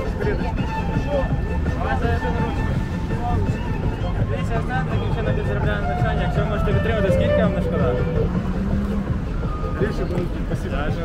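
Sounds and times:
people talking: 0.0s - 8.5s, 9.5s - 11.0s
city street traffic rumble: 0.0s - 11.0s
vehicle engine hum: 0.8s - 11.0s.

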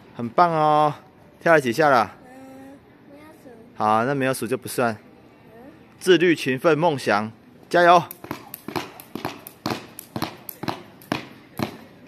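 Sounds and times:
jump rope slapping ground: 8.0s - 12.0s
shoes landing on concrete: 8.1s - 12.0s.

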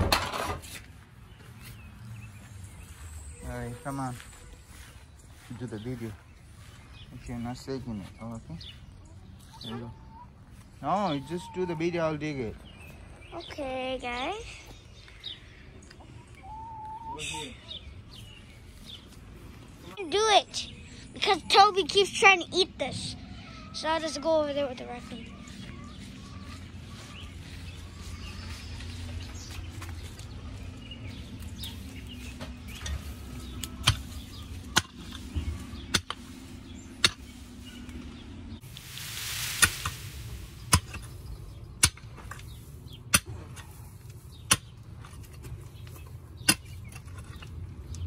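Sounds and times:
small birds chirping: 0.6s - 48.0s
chickens clucking: 7.4s - 12.4s, 15.8s - 19.9s, 22.8s - 38.7s
pick striking soil: 38.7s - 41.2s.

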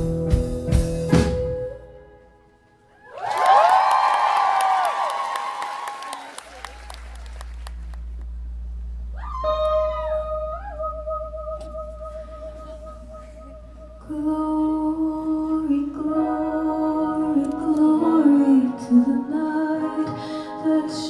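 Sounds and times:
audience cheering and whistling: 3.0s - 7.5s
people clapping: 3.1s - 8.4s
low steady hum: 6.4s - 21.0s.

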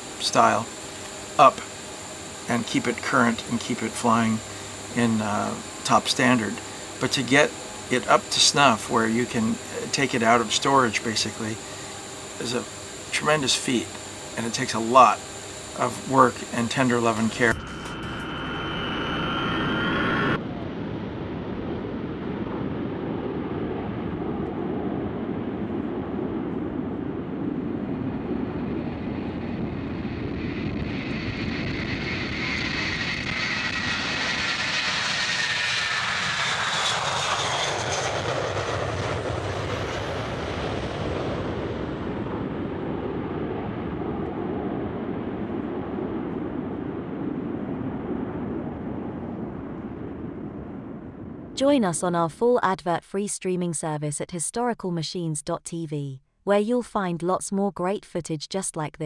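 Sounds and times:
jet engines roaring: 0.0s - 51.5s
jet engine whine: 0.0s - 51.8s
cockpit engine noise: 0.0s - 52.2s.

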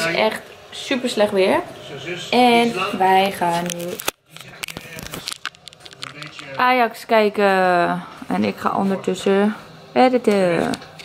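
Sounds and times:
camera handling clicks and rustles: 3.6s - 6.4s.

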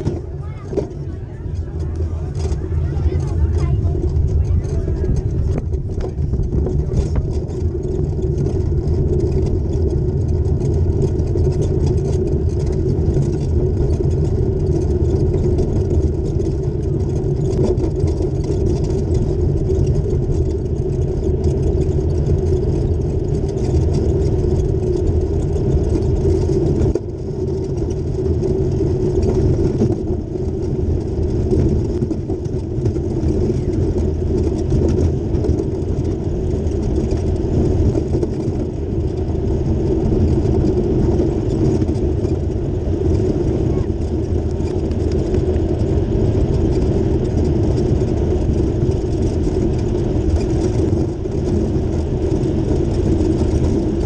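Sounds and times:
kart wheels rumbling on asphalt: 0.0s - 54.0s.

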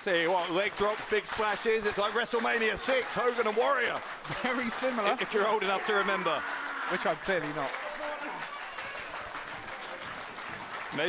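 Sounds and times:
audience clapping: 0.0s - 11.0s.

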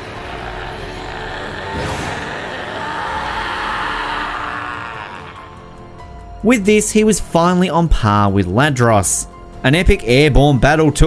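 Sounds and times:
rushing energy roar: 0.0s - 6.0s.

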